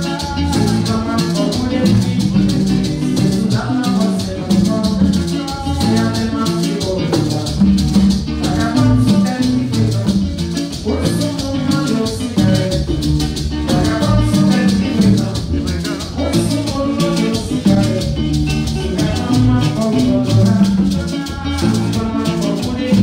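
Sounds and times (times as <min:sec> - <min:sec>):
hand drum: 0:00.0 - 0:23.0
maracas shaking: 0:00.0 - 0:23.0
strummed acoustic guitar: 0:00.0 - 0:23.0.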